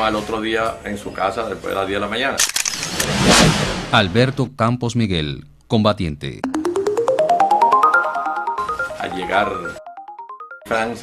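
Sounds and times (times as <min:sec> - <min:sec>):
rising run of ringing notes: 0:06.4 - 0:11.0.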